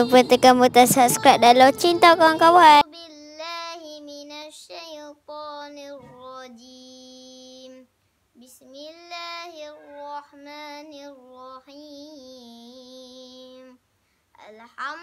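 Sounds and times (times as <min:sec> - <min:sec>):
boy chanting melodic recitation: 0:00.0 - 0:07.8, 0:14.4 - 0:15.0.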